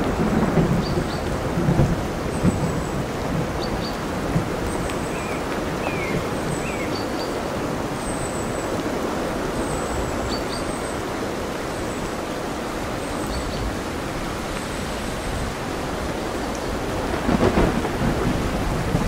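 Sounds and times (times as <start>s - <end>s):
crackling storm noise: 0.0s - 19.0s
dense rain: 0.0s - 19.0s
ocean surf: 0.0s - 19.0s.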